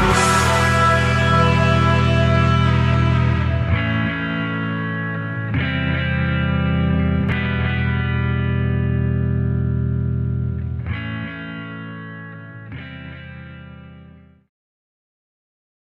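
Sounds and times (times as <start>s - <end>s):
distorted electric guitar chords: 0.0s - 14.4s.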